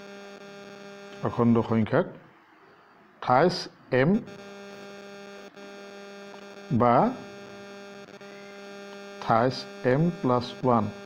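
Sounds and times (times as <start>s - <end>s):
buzzy electrical hum: 0.0s - 11.0s.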